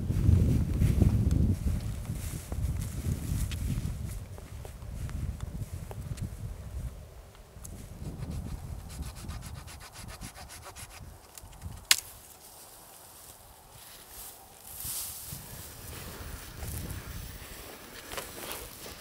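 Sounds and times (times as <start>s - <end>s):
branches rustling: 10.9s - 19.0s
branch cracking: 11.3s - 12.4s.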